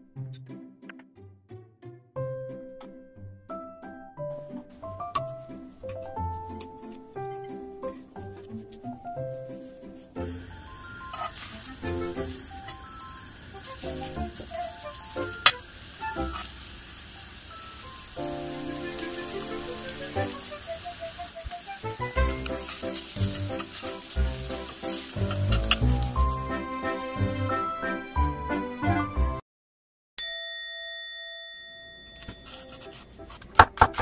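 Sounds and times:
light background music: 0.0 - 16.6, 17.5 - 29.4
pancakes sizzling in oil: 10.2 - 26.6.

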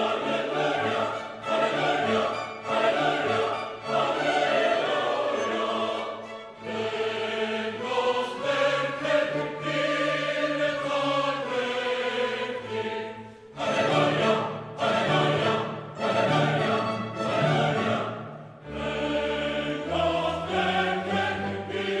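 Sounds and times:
mixed choir singing: 0.0 - 22.0
orchestral accompaniment: 0.0 - 22.0.

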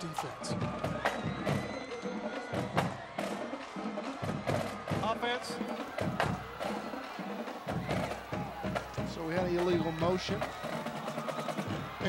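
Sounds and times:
crowd noise: 0.0 - 12.0
drumline percussion: 0.0 - 12.0.

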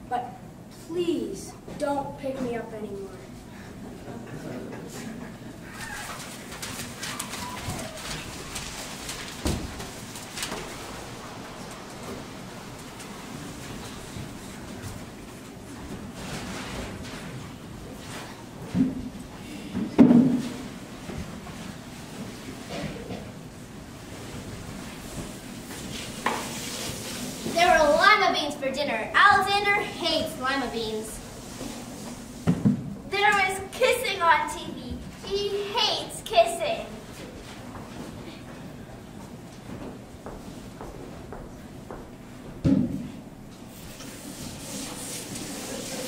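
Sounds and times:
steady background hiss: 0.0 - 16.2, 17.4 - 46.0
footsteps: 39.2 - 43.2.

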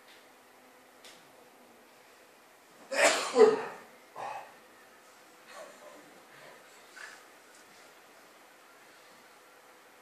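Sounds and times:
person sneezing: 2.9 - 4.5.

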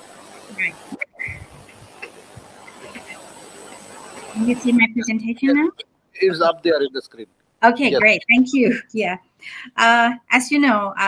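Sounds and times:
high-pitched whine: 0.0 - 7.2
faint background noise: 0.0 - 11.0.

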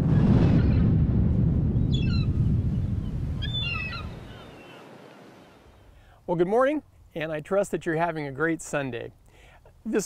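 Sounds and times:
deep boom: 0.0 - 4.3
chirping bird calls: 1.9 - 6.0.

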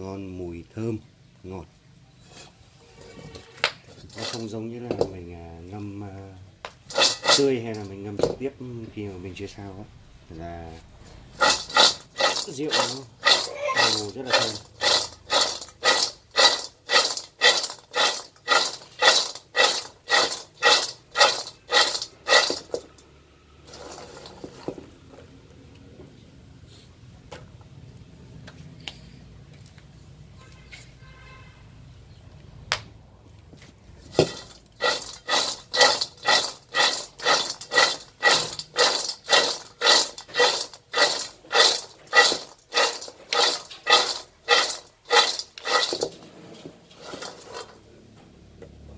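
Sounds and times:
seeds rattling in metal wok: 3.9 - 4.5, 6.8 - 8.3, 11.3 - 24.8, 34.0 - 46.2, 46.9 - 47.8.

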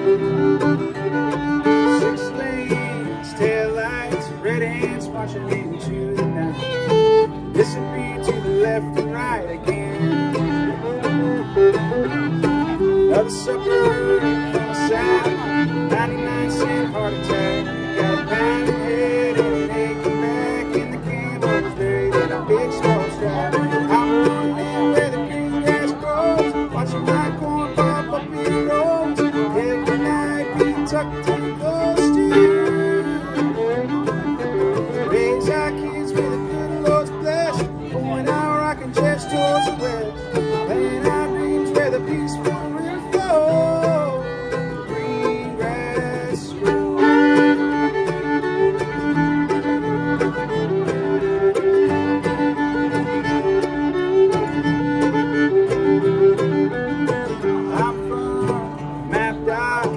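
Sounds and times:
fiddle bowed lead: 0.0 - 59.9
mandolin: 0.0 - 59.9
strummed acoustic guitar: 0.0 - 59.9.

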